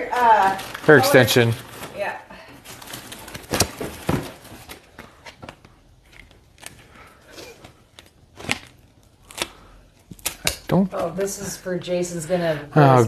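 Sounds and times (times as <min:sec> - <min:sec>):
plastic packaging crinkling: 0:00.0 - 0:05.0.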